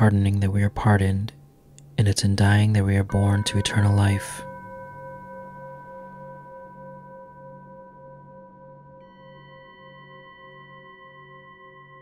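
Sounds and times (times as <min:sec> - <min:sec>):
pulsing low hum: 0:03.0 - 0:08.6
singing bowl tone ringing: 0:03.1 - 0:12.0.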